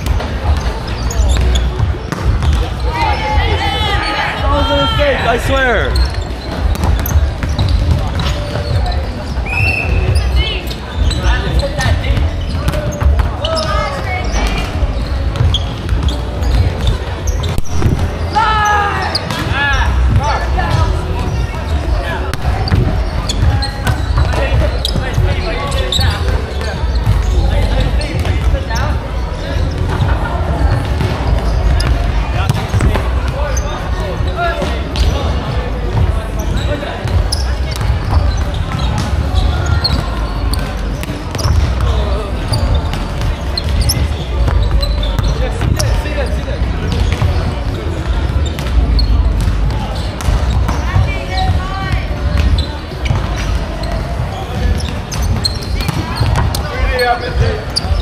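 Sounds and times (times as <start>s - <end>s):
volleyballs bouncing on wooden floor: 0.0s - 3.0s, 6.0s - 10.4s, 11.1s - 18.2s, 22.3s - 25.4s, 34.6s - 46.0s, 46.6s - 58.0s
voices of many players: 0.0s - 58.0s.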